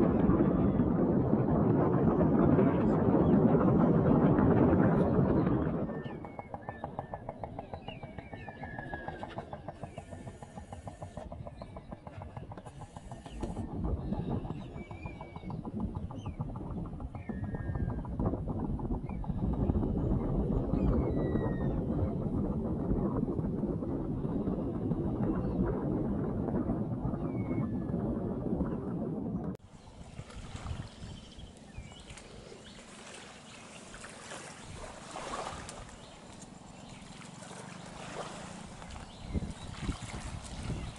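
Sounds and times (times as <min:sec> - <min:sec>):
low rumble: 0:00.0 - 0:30.2
shorebirds whistling: 0:05.9 - 0:18.1.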